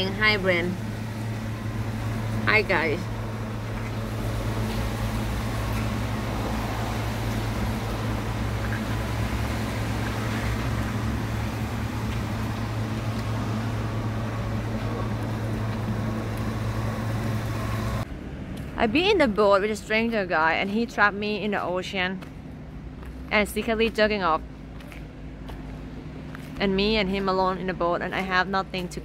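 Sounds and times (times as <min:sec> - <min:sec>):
low mechanical hum: 0:00.0 - 0:29.0
outdoor background noise: 0:00.0 - 0:29.0.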